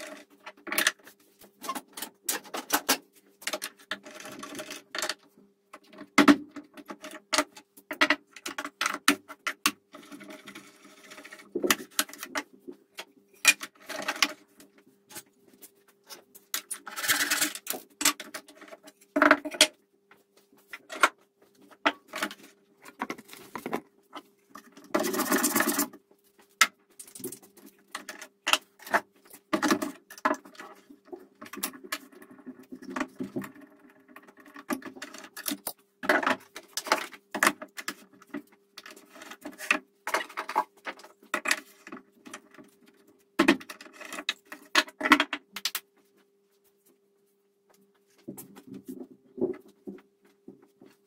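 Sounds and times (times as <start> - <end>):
wooden pieces clattering on workbench: 16.0 - 19.8.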